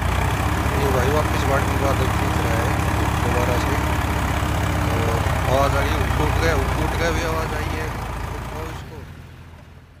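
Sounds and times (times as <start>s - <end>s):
tractor diesel engine under load: 0.0s - 10.0s.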